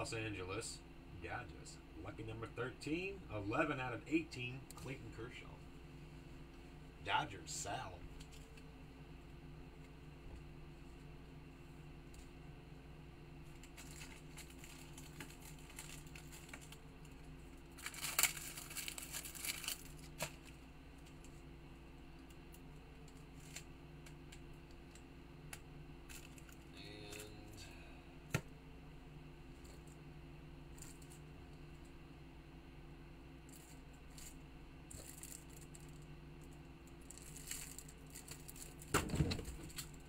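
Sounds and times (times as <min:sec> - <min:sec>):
steady low hum: 0:00.0 - 0:40.0
plastic packaging crinkling and tearing: 0:13.5 - 0:21.3, 0:33.5 - 0:36.0, 0:37.0 - 0:40.0.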